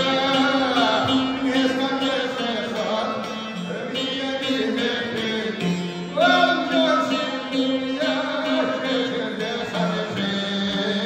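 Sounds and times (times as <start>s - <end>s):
man singing: 0.0s - 11.0s
plucked lute: 0.0s - 11.0s.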